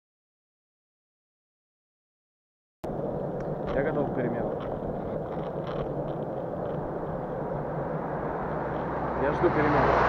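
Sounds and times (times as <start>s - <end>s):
wind buffeting microphone: 2.9s - 10.0s.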